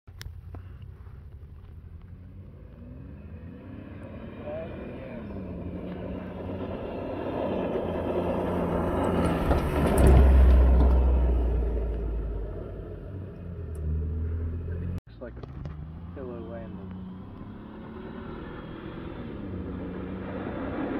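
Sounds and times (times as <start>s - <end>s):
truck engine revving hard: 15.8s - 20.9s.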